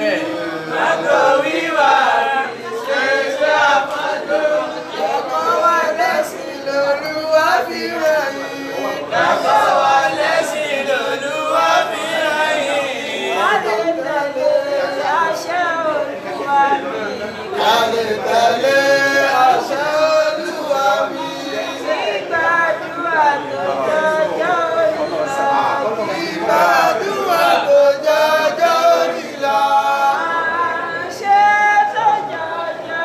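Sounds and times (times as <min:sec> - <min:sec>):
melodic vocal chanting: 0:00.0 - 0:33.0
unaccompanied singing voices: 0:00.0 - 0:33.0.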